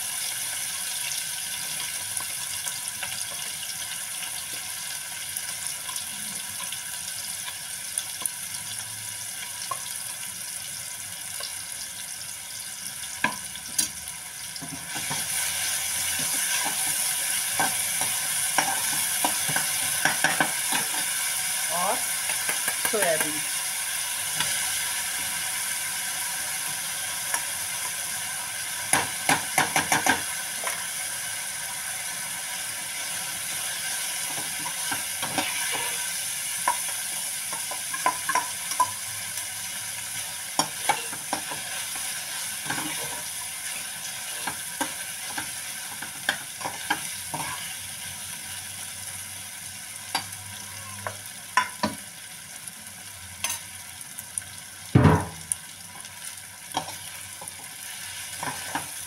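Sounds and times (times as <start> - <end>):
onions sizzling in oil: 0.0 - 59.0
metal spoon scraping a pan: 16.1 - 21.3, 34.2 - 39.1, 40.5 - 47.8, 50.1 - 52.0, 56.7 - 59.0.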